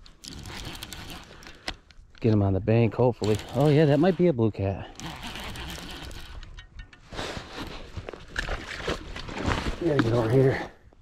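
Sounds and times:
fishing reel cranking: 0.2s - 1.7s, 3.2s - 4.2s, 4.8s - 6.5s
handling rustling: 3.2s - 10.7s.

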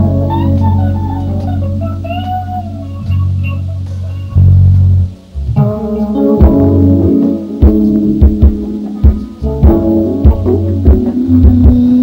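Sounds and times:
band playing sustained chords: 0.0s - 12.0s
bass guitar low note: 0.0s - 12.0s.

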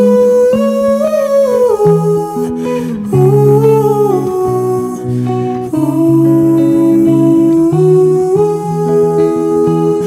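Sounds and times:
acoustic guitar: 0.0s - 10.0s
man humming a held note: 0.0s - 10.0s.

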